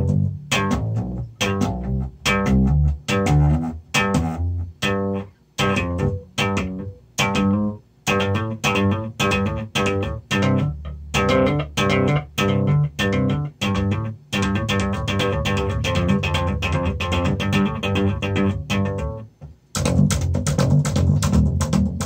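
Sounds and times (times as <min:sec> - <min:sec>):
slap bass riff: 0:00.0 - 0:22.0.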